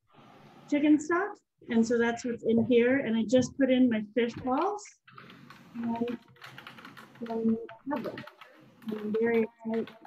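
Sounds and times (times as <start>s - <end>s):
person's voice: 0.7s - 5.0s, 5.8s - 6.2s, 7.2s - 10.0s.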